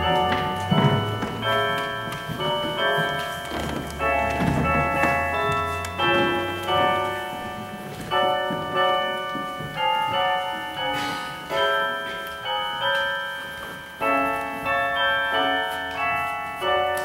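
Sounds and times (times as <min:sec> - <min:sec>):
slow keyboard chords: 0:00.0 - 0:17.0.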